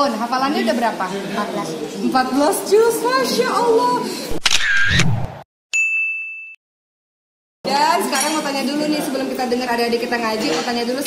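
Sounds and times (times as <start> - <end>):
bright ding chime: 5.7 - 6.6.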